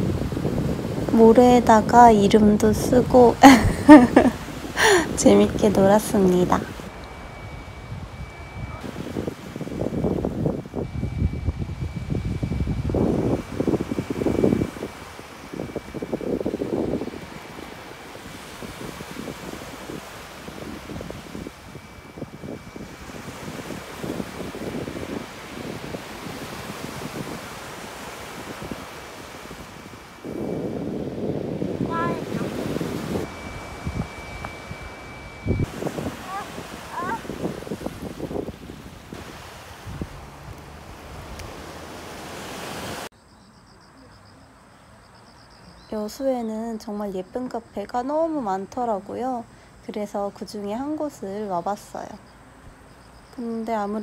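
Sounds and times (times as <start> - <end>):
surf washing on a beach: 0.0 - 43.1
wind buffeting the microphone: 0.0 - 43.1.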